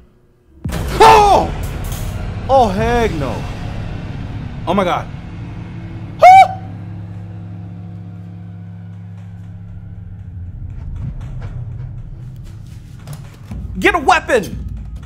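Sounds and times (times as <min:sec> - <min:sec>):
low rumbling drone: 0:00.0 - 0:13.7.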